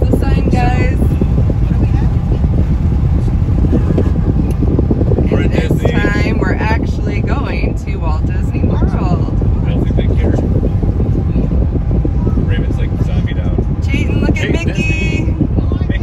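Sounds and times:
car cabin road rumble: 0:00.0 - 0:16.0
people talking: 0:00.0 - 0:16.0.

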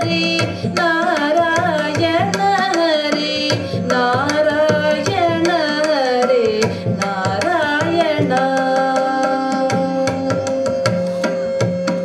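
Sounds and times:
woman singing: 0:00.0 - 0:10.7.

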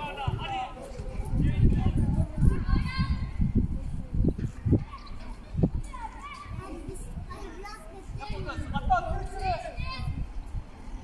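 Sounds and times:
children shouting: 0:02.4 - 0:03.4.

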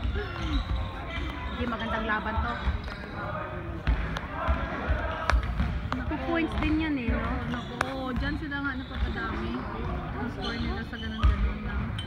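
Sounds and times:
people talking: 0:00.0 - 0:12.0
basketball bouncing on gym floor: 0:03.8 - 0:12.0.

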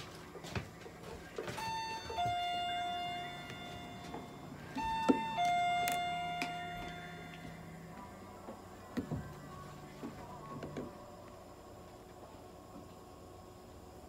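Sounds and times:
two-note electronic chime: 0:01.6 - 0:07.7.

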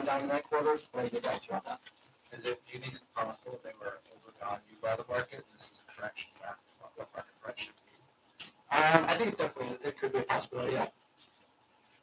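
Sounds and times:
person speaking: 0:00.0 - 0:11.4.

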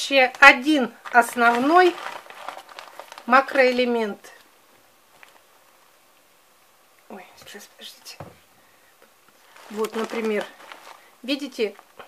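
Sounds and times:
plastic packet crinkling: 0:00.2 - 0:04.1, 0:05.1 - 0:05.5, 0:09.4 - 0:12.0.

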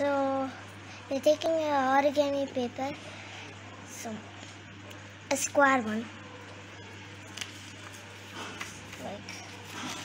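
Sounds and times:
paper rustling and crinkling: 0:07.2 - 0:10.0.

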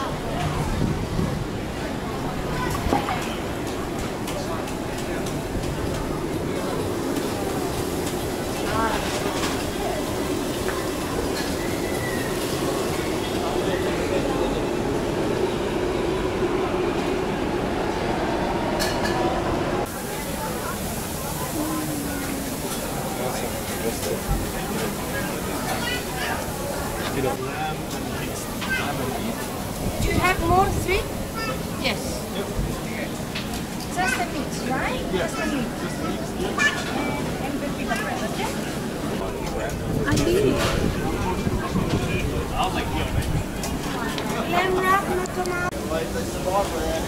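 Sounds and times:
crowd chatter: 0:00.0 - 0:47.0.

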